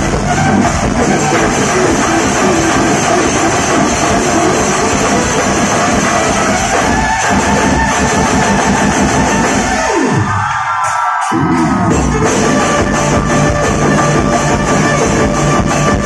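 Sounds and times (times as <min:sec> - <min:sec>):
bass downward sweep: 0:00.0 - 0:10.4, 0:11.3 - 0:16.0
live fusion band music: 0:11.4 - 0:16.0.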